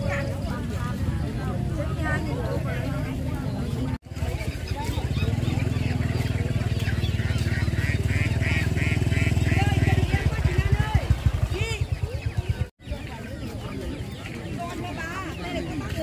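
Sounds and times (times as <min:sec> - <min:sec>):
motorcycle engine running: 0:00.0 - 0:14.8
people talking: 0:00.0 - 0:16.0.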